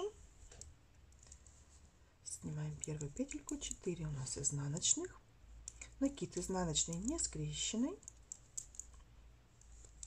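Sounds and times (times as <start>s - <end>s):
knitting needles clicking: 0.4s - 1.6s, 2.6s - 10.0s.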